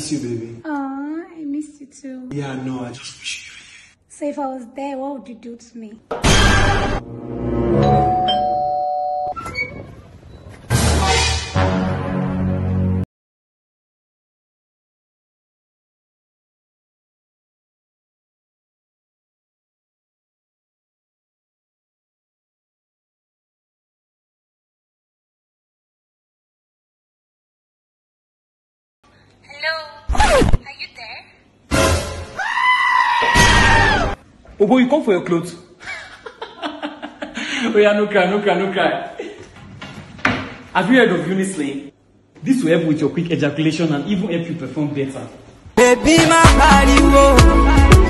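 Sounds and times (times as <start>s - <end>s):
two-note doorbell chime: 7.8s - 9.4s
long high-pitched cry: 32.4s - 34.1s.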